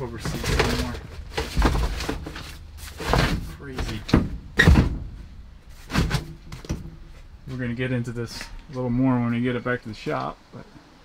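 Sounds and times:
dull thump: 0.2 - 7.4.

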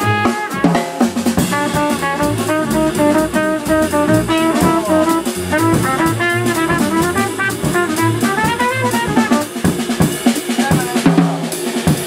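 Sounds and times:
upright bass: 0.0 - 10.1
trumpet playing jazz: 0.0 - 11.1
drum kit: 0.0 - 12.0.

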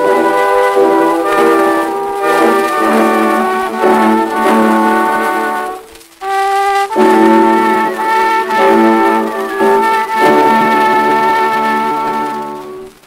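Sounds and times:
acoustic orchestra music: 0.0 - 13.0
record surface hiss: 0.0 - 13.0.

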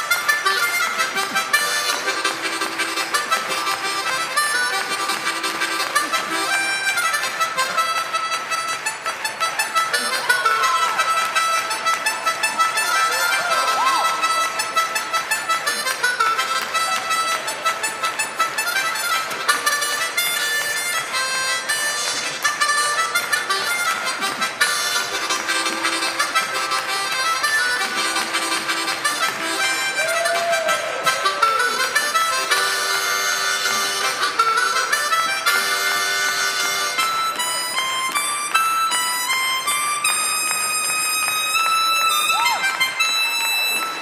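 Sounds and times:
harmonica playing: 0.0 - 44.0.

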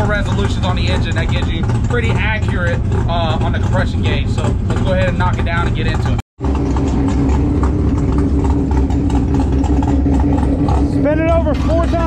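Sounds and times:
engine cranking on starter: 0.0 - 12.0.

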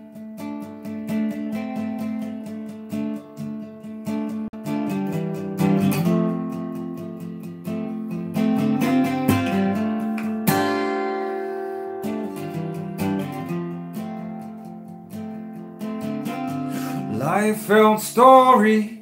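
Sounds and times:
acoustic guitar picking and strumming: 0.0 - 19.0.

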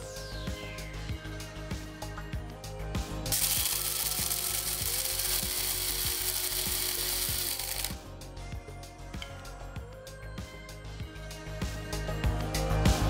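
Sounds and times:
background music with steady beat: 0.0 - 13.0
electric coffee grinder grinding beans: 3.3 - 8.0.

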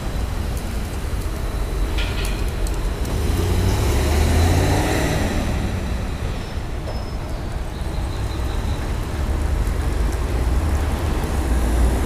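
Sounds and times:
car driving past: 3.0 - 6.6.

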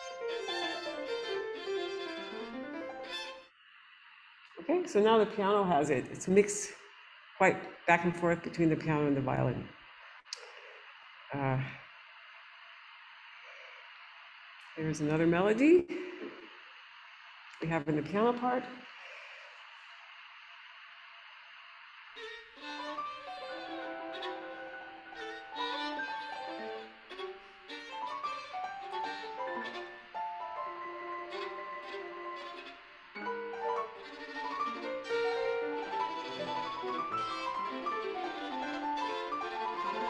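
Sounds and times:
piano: 0.0 - 3.5, 22.2 - 40.0
violin: 0.0 - 3.6, 22.2 - 40.0
faint hiss: 0.0 - 40.0.

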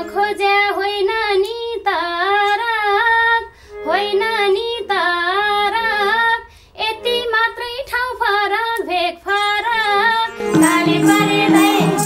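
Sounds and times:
harmonium: 0.0 - 12.0
woman singing folk song: 0.0 - 12.0
hand drum: 10.4 - 12.0.

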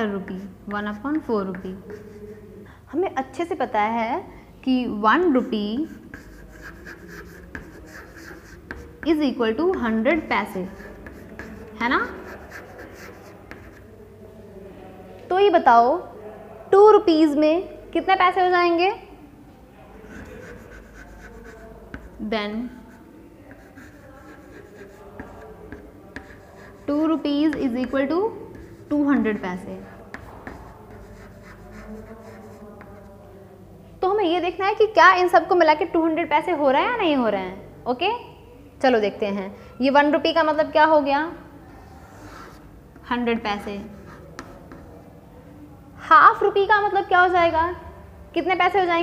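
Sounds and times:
chalk tapping on a chalkboard: 0.7 - 2.4, 5.8 - 10.0, 10.6 - 13.9, 20.1 - 22.2, 23.5 - 29.4, 30.0 - 33.1, 44.0 - 44.9
chalk strokes on a chalkboard: 0.8 - 2.6, 5.8 - 13.9, 20.0 - 33.2, 41.8 - 42.7, 43.8 - 45.0.

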